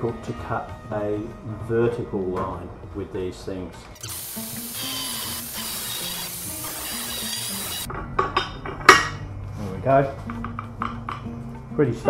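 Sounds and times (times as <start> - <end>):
angle grinder cutting steel: 4.0 - 7.9.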